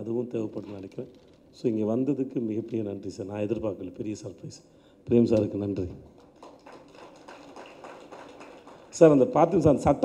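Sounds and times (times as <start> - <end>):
faint hall room noise: 0.0 - 10.0.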